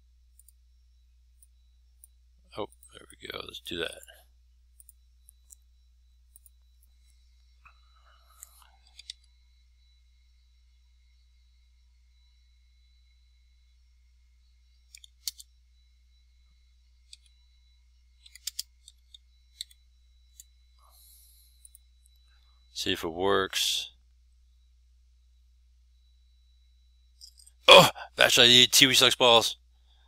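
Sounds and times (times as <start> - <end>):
computer keys clicking: 6.3 - 6.6, 8.3 - 9.4, 14.9 - 15.5, 17.1 - 17.4, 18.2 - 20.5.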